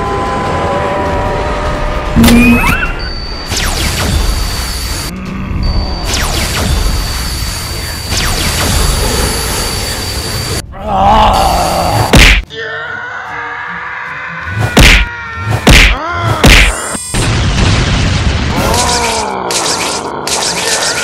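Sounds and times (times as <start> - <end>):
cartoon hit: 2.2 - 2.8, 14.8 - 17.3
high-pitched laser-beam tone: 2.2 - 5.1.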